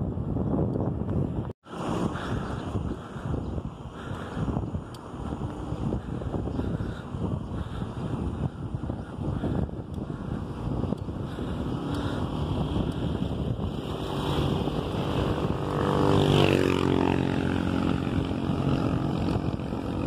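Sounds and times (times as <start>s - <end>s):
wind rushing over microphone: 0.0s - 20.0s
motorcycle engine passing: 11.3s - 20.0s.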